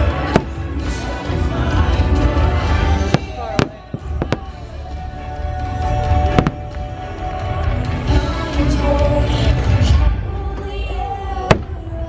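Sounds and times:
loud show music: 0.0 - 12.0.

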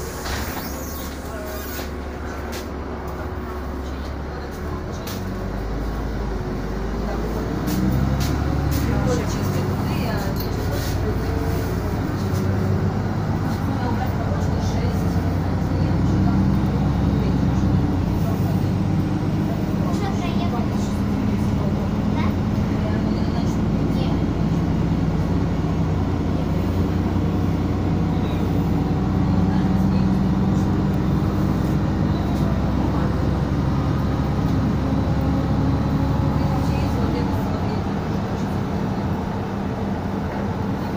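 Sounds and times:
bus engine droning: 0.0 - 40.9
road and tyre noise: 0.0 - 40.9.

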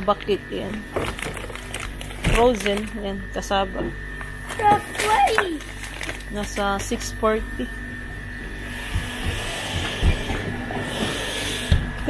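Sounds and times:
freezer cabinets humming: 0.0 - 12.0.

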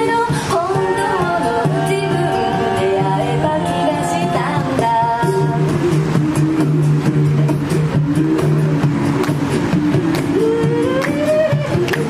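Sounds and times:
women singing in harmony: 0.0 - 6.0
vocal bass line: 0.0 - 12.0
vocal percussion beat: 0.0 - 12.0.

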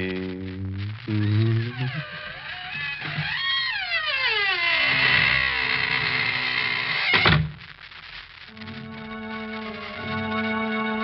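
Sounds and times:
door creaking and squealing: 1.0 - 7.5.

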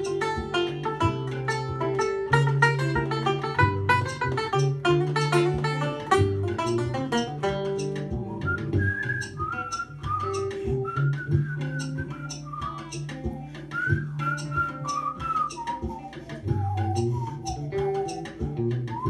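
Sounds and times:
banjo picking: 0.0 - 19.0
whistled melody: 0.0 - 19.0.

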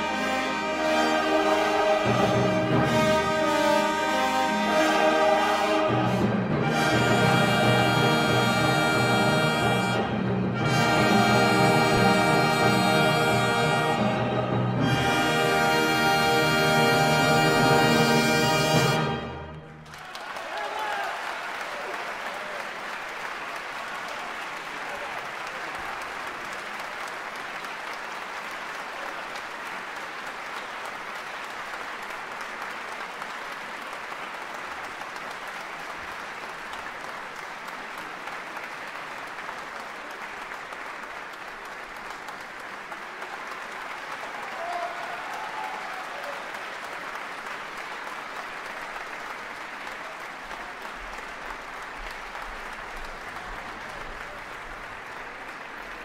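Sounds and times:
audience applauding: 0.0 - 56.0.

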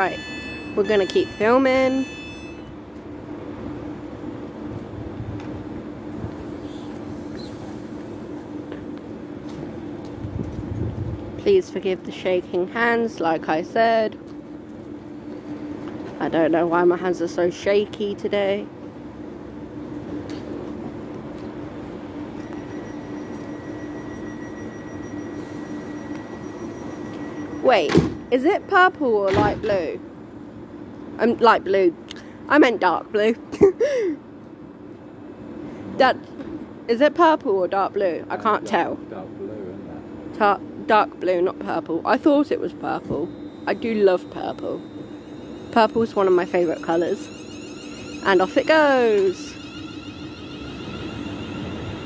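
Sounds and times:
steady high-pitched tone: 0.0 - 3.0, 22.3 - 30.1, 40.4 - 52.0
train equipment humming: 0.0 - 52.0.

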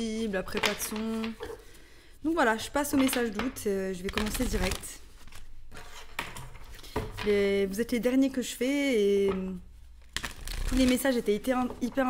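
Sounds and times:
cards rustling: 4.0 - 6.2, 10.0 - 11.2.

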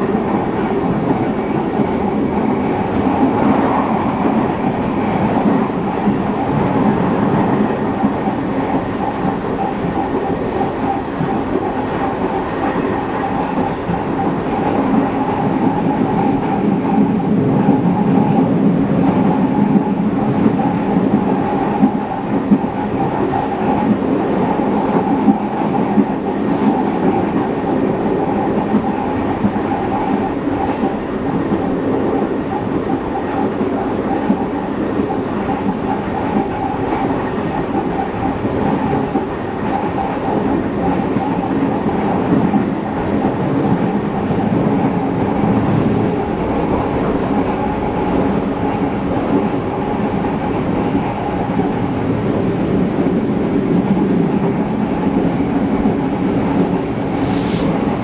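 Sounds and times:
train wheels on rail: 0.0 - 58.0
short high hisses: 57.0 - 57.8.

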